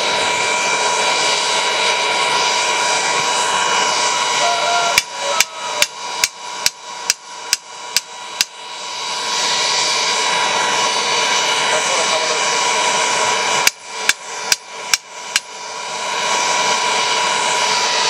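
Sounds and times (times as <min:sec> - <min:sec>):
air blower drone: 0:00.0 - 0:18.0
hammer striking steel bar: 0:05.0 - 0:08.6, 0:13.6 - 0:15.5.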